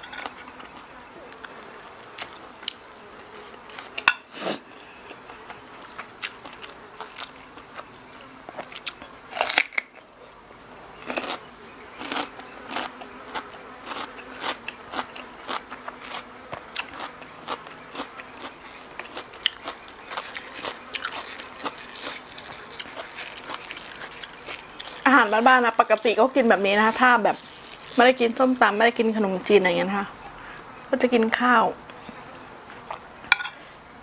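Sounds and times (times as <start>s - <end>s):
crisp bites and chewing: 8.5s - 9.9s, 11.0s - 11.4s, 12.0s - 16.2s, 16.8s - 28.5s.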